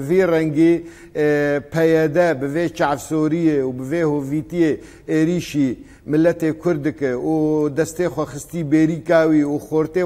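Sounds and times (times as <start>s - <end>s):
man talking: 0.0s - 10.0s.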